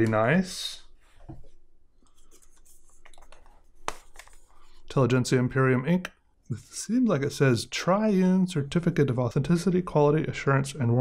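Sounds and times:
paper rustling: 2.1s - 4.8s.

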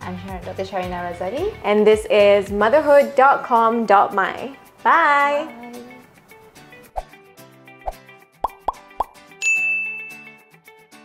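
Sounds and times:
light background music: 0.0s - 11.0s
bright ding: 9.4s - 10.5s.

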